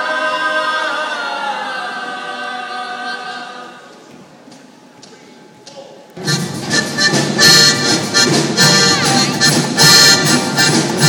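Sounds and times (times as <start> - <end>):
choir singing unaccompanied: 0.0 - 3.9.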